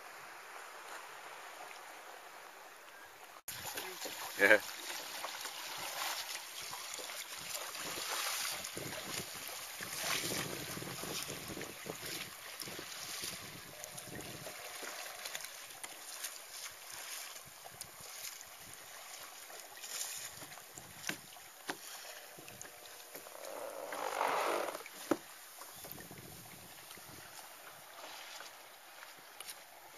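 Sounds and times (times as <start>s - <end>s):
water splashing around kayak: 0.0s - 29.9s
wind on microphone: 7.4s - 14.6s, 25.8s - 27.4s.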